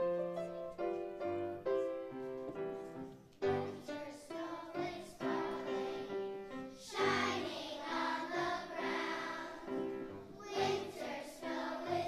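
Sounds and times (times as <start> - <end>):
children's choir singing: 3.4 - 12.0.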